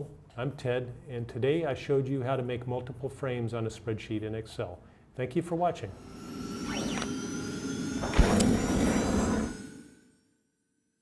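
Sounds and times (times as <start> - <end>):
whoosh: 6.0 - 10.1
low hit: 8.0 - 9.6.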